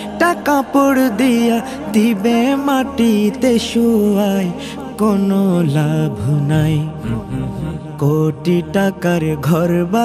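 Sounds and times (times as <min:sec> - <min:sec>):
man singing devotional song: 0:00.0 - 0:10.0
steady low drone: 0:06.2 - 0:08.4.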